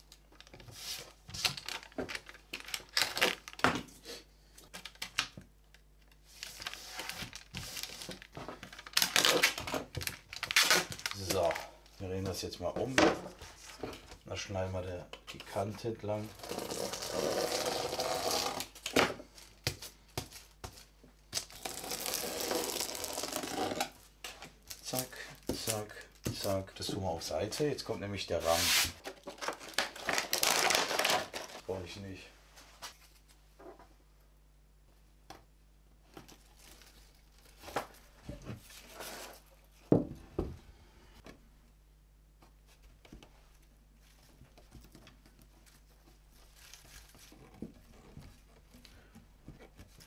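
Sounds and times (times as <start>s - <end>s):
adhesive strip rustling and crinkling: 0.0s - 3.7s, 4.7s - 11.6s, 28.6s - 31.7s, 42.7s - 48.9s
foil tearing and crinkling: 6.4s - 11.6s, 21.4s - 23.8s, 29.3s - 31.6s
blade cutting tape scratchily: 16.3s - 18.7s, 21.6s - 23.9s.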